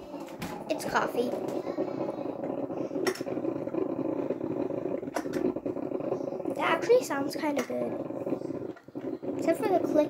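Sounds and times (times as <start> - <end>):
drip coffee maker brewing: 0.0 - 10.0.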